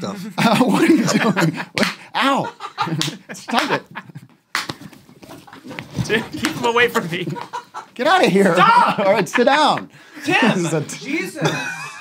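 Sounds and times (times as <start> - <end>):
clothes rustling: 4.1 - 7.6
men grunting: 8.2 - 11.8.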